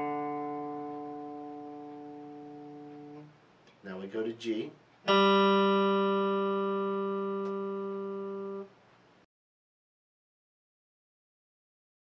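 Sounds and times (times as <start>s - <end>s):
electric guitar note ringing: 0.0s - 3.3s, 5.0s - 8.7s.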